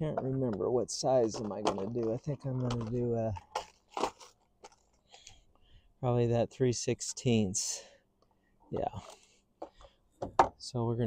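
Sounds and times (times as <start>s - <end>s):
small plastic rattles: 0.5s - 5.3s.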